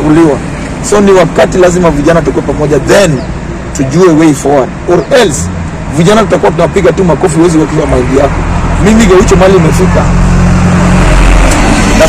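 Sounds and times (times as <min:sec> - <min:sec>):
large vehicle passing: 0:04.8 - 0:12.0.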